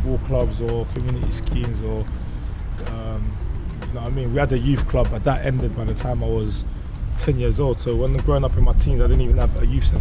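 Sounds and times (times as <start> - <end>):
man talking: 0.0 - 2.1, 2.8 - 10.0.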